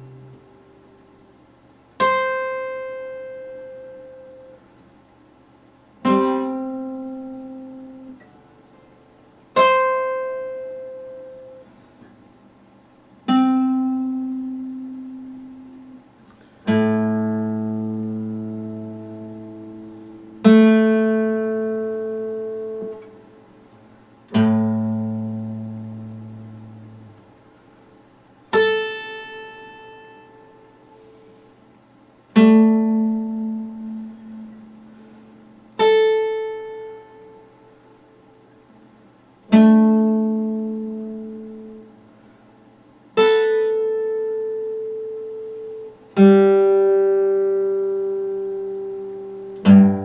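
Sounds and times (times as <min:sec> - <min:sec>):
acoustic guitar plucked notes: 0:00.0 - 0:05.2, 0:05.8 - 0:42.2, 0:42.9 - 0:50.0.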